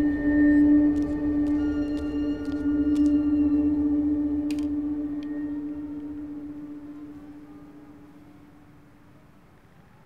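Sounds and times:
suspense drone: 0:00.0 - 0:08.6.

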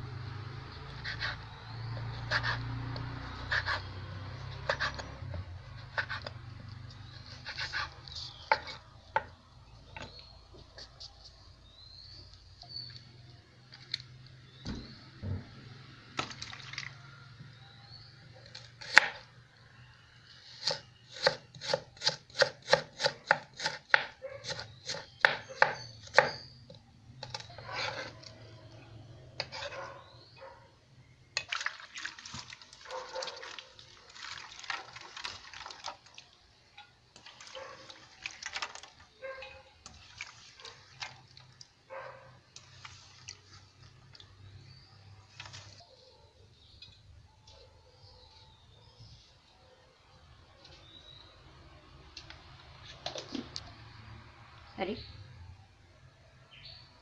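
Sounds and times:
knife chopping on wooden board: 0:20.6 - 0:26.5.

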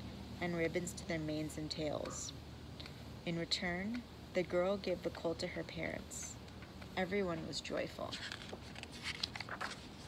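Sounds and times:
book pages turning: 0:08.0 - 0:10.0.

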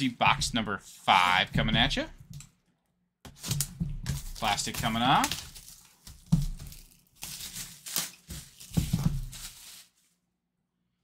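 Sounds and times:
plastic rustling: 0:03.3 - 0:10.2.

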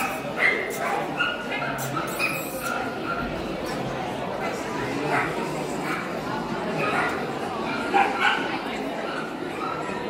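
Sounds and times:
dog barking: 0:00.0 - 0:03.3, 0:06.8 - 0:07.2, 0:07.9 - 0:08.5
background chatter: 0:00.0 - 0:10.0.

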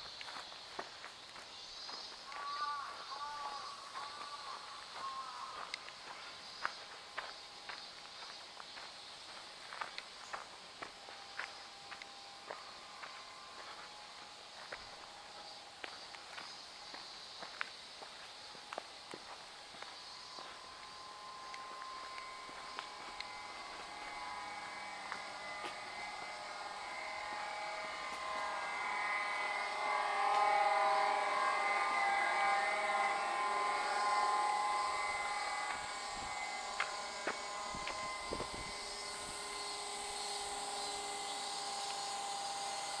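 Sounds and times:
drone of steady tones: 0:00.0 - 0:43.0.

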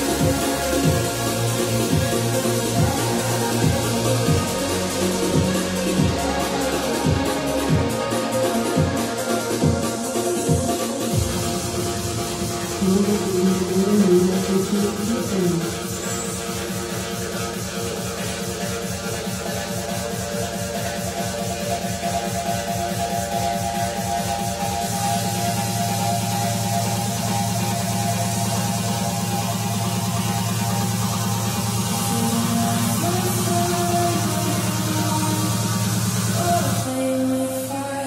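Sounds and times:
trance music with pulsing bass: 0:00.0 - 0:38.0.

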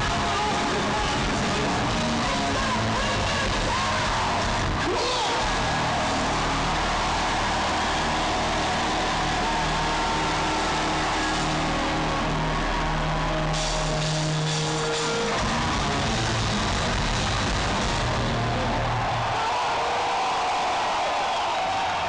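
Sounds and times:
bass guitar: 0:00.0 - 0:19.4
distorted electric guitars: 0:00.0 - 0:19.4
drums: 0:00.0 - 0:22.0.

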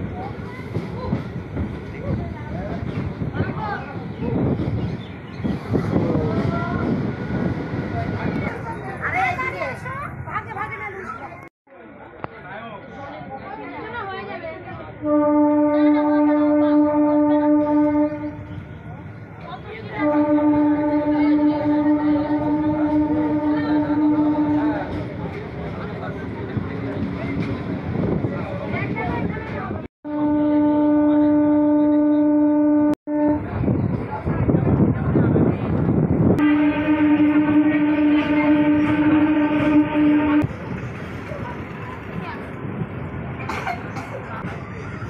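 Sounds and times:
train rumbling: 0:00.0 - 0:12.4, 0:13.0 - 0:45.0
train horn: 0:15.0 - 0:18.6, 0:19.9 - 0:25.0, 0:30.0 - 0:33.6, 0:36.4 - 0:40.5.

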